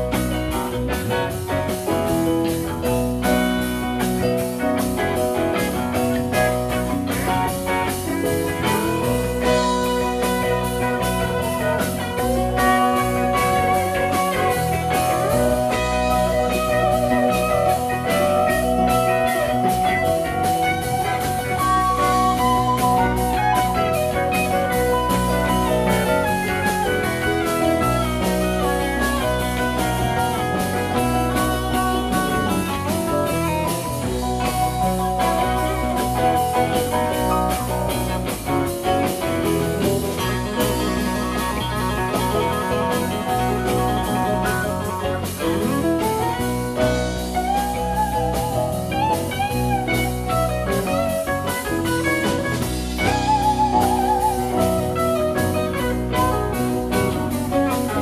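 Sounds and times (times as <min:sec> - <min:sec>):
bass: 0:00.0 - 0:58.0
drums: 0:00.0 - 0:58.0
electric guitar lead lines: 0:00.0 - 0:58.0
keyboards: 0:00.0 - 0:58.0
rhythm guitars: 0:00.0 - 0:58.0.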